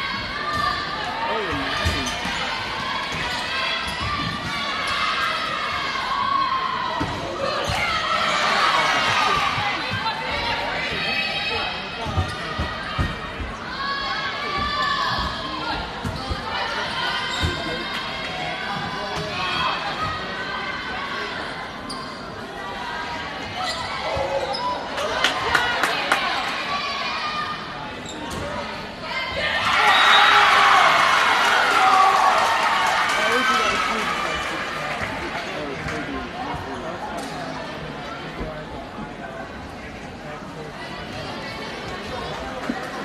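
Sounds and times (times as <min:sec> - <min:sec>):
hubbub of voices in a gym: 0:00.0 - 0:43.0.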